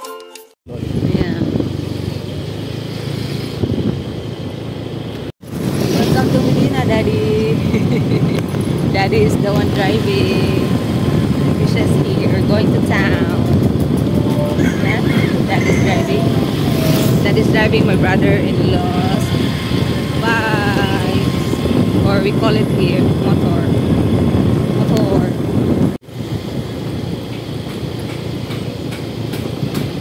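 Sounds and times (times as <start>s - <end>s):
dense low rumble: 0.7s - 2.8s, 3.6s - 30.0s
motorcycle engine running: 0.7s - 30.0s.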